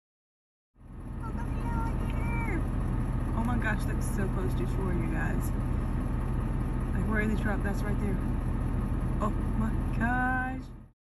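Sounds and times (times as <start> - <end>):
low mechanical hum: 0.8 - 10.9.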